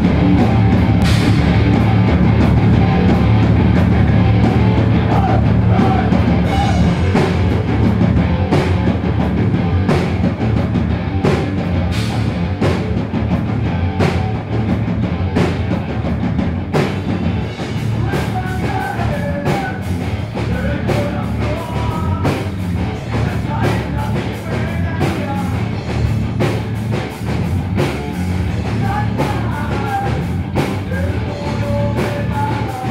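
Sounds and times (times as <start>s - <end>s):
drum beat: 0.0s - 32.9s
rock band playing loud: 0.0s - 32.9s
person singing: 5.0s - 7.2s, 18.0s - 25.6s, 28.7s - 32.9s.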